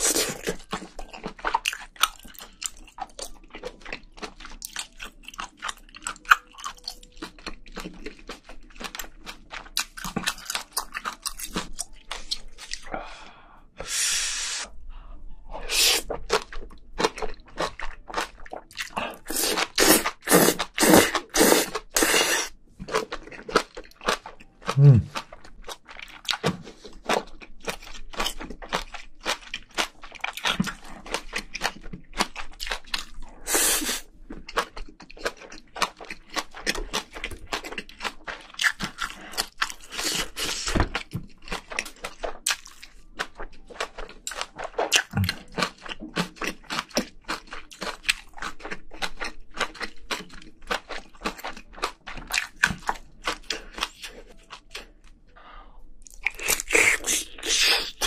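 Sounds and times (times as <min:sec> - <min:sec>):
chewing and crunching food: 0:00.0 - 0:13.4, 0:15.0 - 0:58.0.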